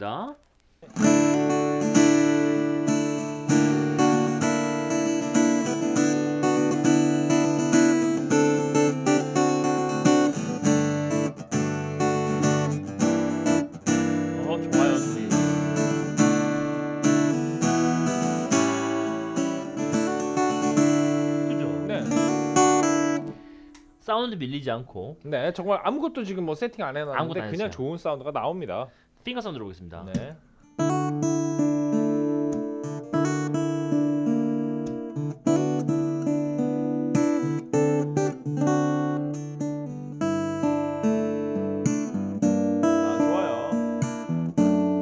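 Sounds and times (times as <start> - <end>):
acoustic guitar strumming chords: 0.8 - 23.9, 30.7 - 45.0.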